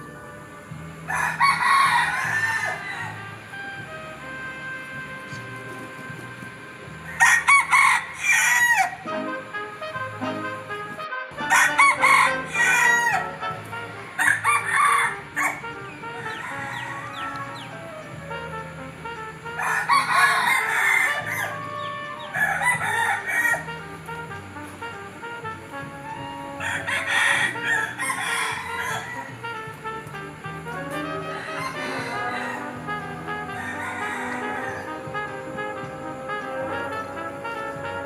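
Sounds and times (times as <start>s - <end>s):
rooster crowing: 0.0s - 3.9s, 7.1s - 9.3s, 11.4s - 18.8s, 19.5s - 23.8s, 26.1s - 29.6s, 30.9s - 38.0s
faint background music: 0.0s - 38.0s.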